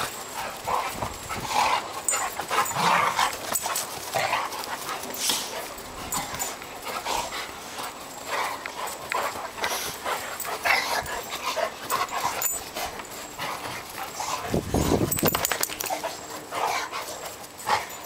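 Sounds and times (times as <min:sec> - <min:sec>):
dogs scuffling: 0:00.0 - 0:18.0.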